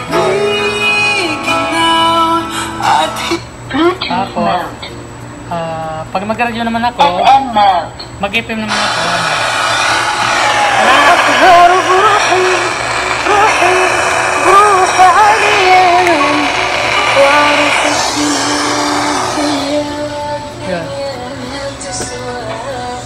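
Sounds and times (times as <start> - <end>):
music with wavering singing voice: 0.0 - 3.5, 10.8 - 23.0.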